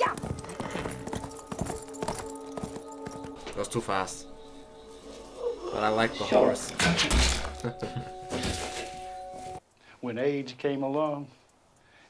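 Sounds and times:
horse hoofbeats: 0:00.0 - 0:03.7
held music notes: 0:00.0 - 0:06.9.

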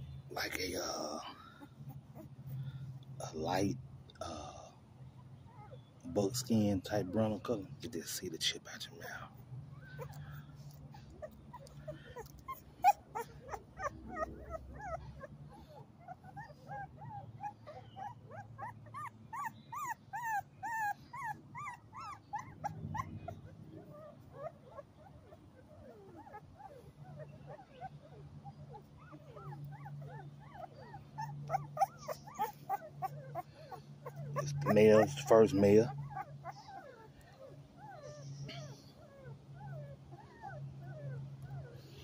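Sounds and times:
puppy whimpering and squealing: 0:00.4 - 0:03.5, 0:04.3 - 0:07.4, 0:09.0 - 0:42.0.

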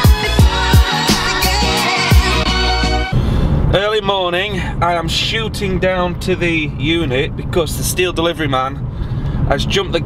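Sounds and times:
engine and road rumble: 0:00.0 - 0:10.0
man talking: 0:03.7 - 0:08.8, 0:09.5 - 0:10.0.

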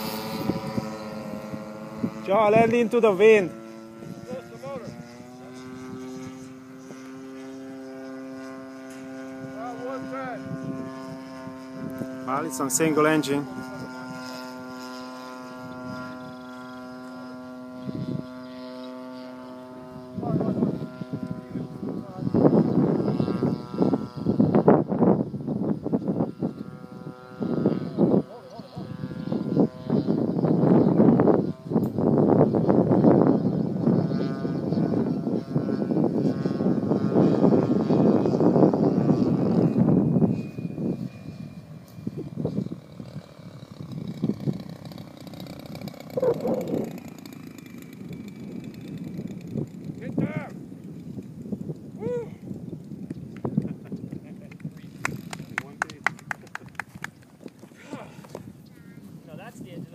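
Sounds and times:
model plane engine droning: 0:00.0 - 0:59.9.

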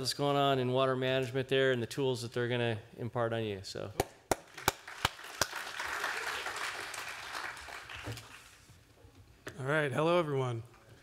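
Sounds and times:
audience applauding: 0:04.4 - 0:08.7.

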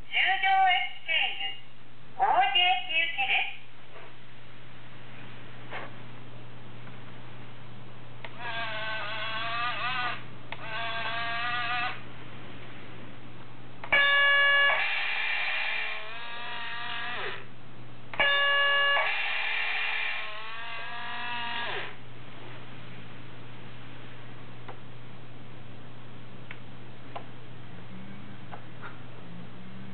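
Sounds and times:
recorded voice announcements: 0:00.0 - 0:03.7.

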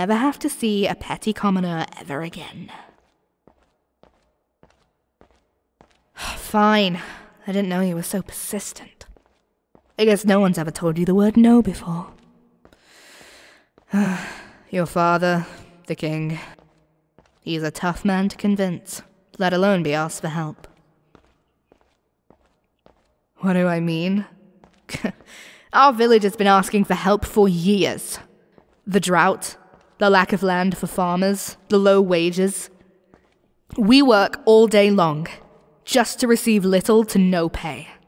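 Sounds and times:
soft footsteps: 0:02.4 - 0:06.4, 0:08.0 - 0:11.0, 0:11.6 - 0:13.9, 0:15.4 - 0:18.1, 0:20.1 - 0:23.4, 0:24.3 - 0:25.4, 0:27.3 - 0:31.8, 0:32.6 - 0:33.8.

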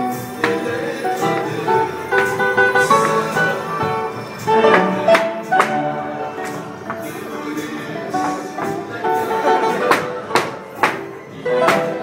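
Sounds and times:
flamenco guitar: 0:00.0 - 0:12.0
person singing: 0:00.0 - 0:12.0.

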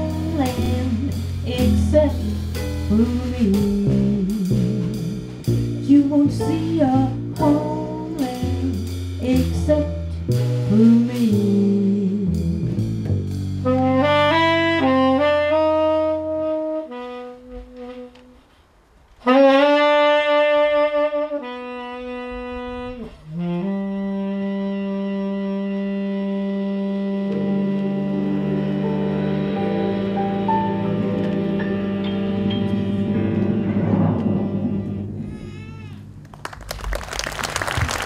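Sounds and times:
jazz band playing: 0:00.0 - 0:38.0
saxophone holding long notes: 0:13.6 - 0:18.4, 0:19.2 - 0:38.0.

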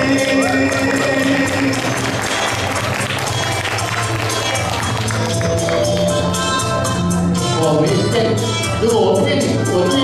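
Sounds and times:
recorded backing music: 0:00.0 - 0:10.0
audience applause: 0:00.3 - 0:06.2.

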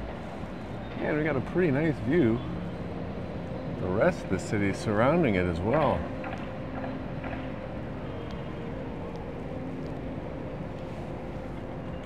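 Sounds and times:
distant city traffic hum: 0:00.0 - 0:12.0
faint steady engine tone: 0:00.0 - 0:12.0.

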